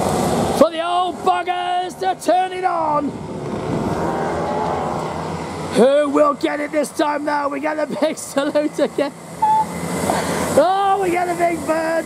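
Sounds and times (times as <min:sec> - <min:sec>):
go-kart engines droning: 0:00.0 - 0:12.0.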